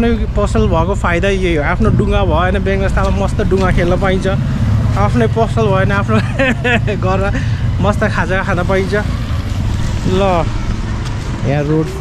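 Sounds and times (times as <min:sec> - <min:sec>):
low rumble: 0:00.0 - 0:12.0
person talking: 0:11.4 - 0:12.0.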